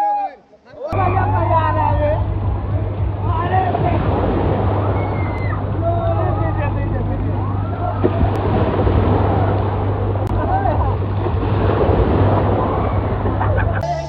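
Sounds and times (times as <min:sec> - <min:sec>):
crowd shouting and whooping: 0:00.0 - 0:02.0, 0:04.8 - 0:06.6, 0:07.3 - 0:08.4, 0:09.1 - 0:09.8, 0:12.3 - 0:14.0
waves splashing: 0:00.6 - 0:14.0
music: 0:01.0 - 0:14.0
steady low hum: 0:01.0 - 0:14.0.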